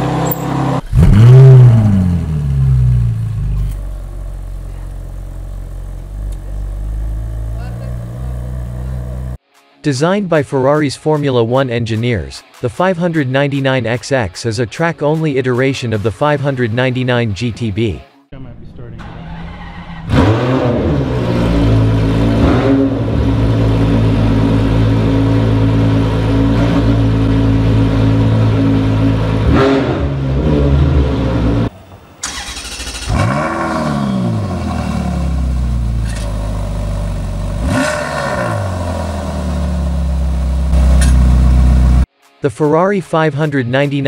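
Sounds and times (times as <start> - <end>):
car engine revving and idling: 0.0 - 9.4, 19.4 - 42.1.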